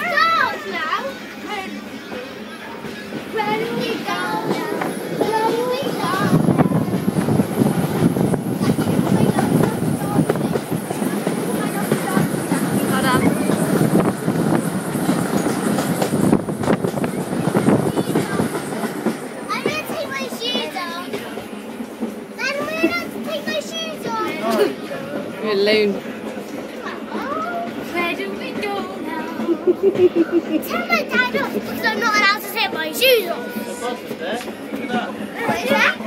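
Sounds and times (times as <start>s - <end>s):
children shouting and squealing: 0.0s - 16.4s, 17.0s - 21.6s, 22.2s - 25.0s, 26.6s - 34.1s, 34.9s - 36.0s
rattle of train wheels: 0.0s - 36.0s.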